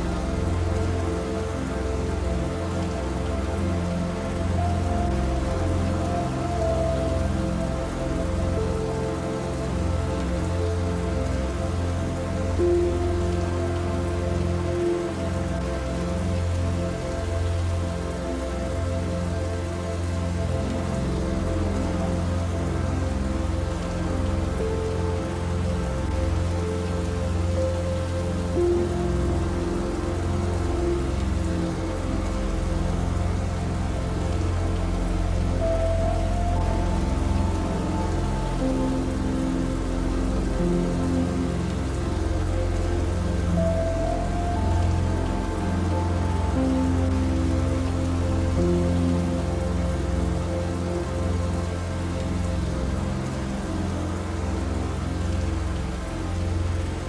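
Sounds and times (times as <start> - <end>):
soft slow background music: 0.0 - 57.0
steady rain: 0.0 - 57.0.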